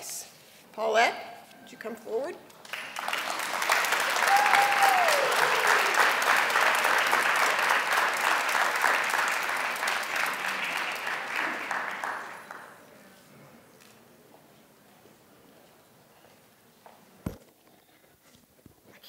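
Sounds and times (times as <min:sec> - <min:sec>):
audience applauding: 0:02.6 - 0:12.8.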